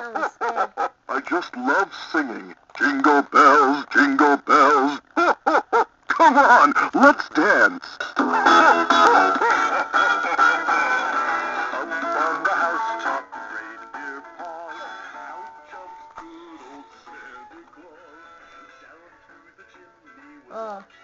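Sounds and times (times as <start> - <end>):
recorded christmas song with singing: 0.0 - 21.0.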